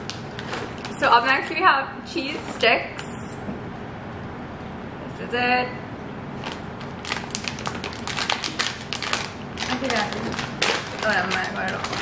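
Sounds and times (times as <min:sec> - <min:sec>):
plastic snack packet crinkling: 0:06.4 - 0:12.0.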